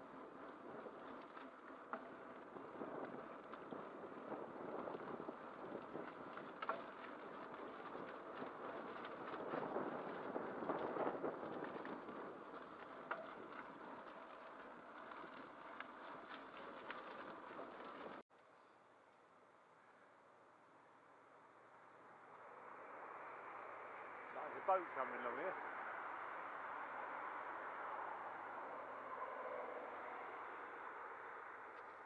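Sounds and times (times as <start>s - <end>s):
bike rattles and clicks: 0.0s - 18.2s
bicycle tyre and wind noise: 0.0s - 32.0s.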